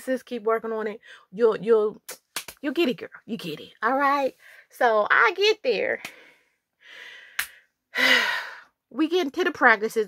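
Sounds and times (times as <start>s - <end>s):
woman's breathy intake: 6.1s - 8.7s.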